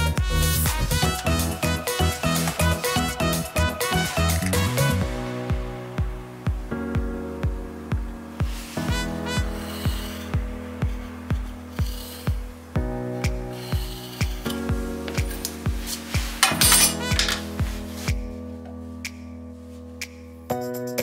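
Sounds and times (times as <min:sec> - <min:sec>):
electronic music with kick drum: 0:00.0 - 0:21.0
pencil scratching along steel rule: 0:09.6 - 0:12.4, 0:13.5 - 0:14.6.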